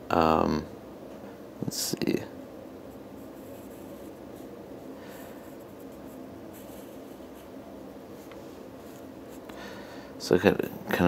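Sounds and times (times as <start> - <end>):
pencil scratching on paper: 3.2 - 4.5.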